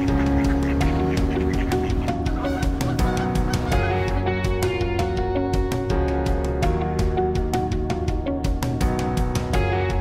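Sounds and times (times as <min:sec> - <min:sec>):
geese honking: 0:00.0 - 0:04.4
background music with steady beat: 0:00.0 - 0:10.0.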